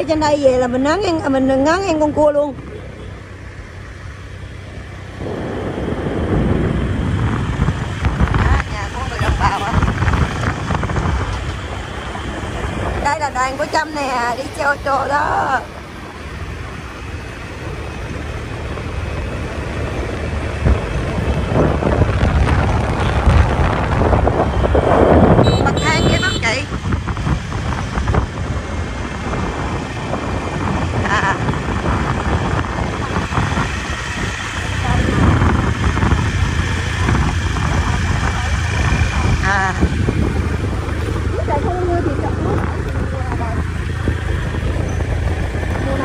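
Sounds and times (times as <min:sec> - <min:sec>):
motorbike engine hum: 0:00.0 - 0:46.0
road noise: 0:00.0 - 0:46.0
wind on microphone: 0:04.8 - 0:15.8, 0:18.2 - 0:46.0.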